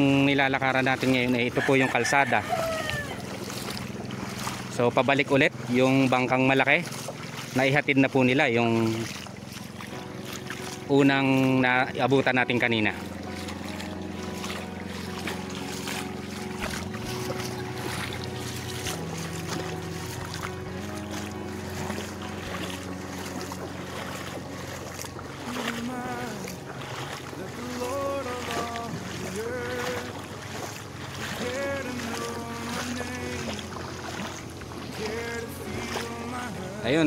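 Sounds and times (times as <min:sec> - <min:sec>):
voices calling out: 0:00.0 - 0:09.7
boat engine droning: 0:00.0 - 0:37.0
water splashing: 0:00.0 - 0:37.0.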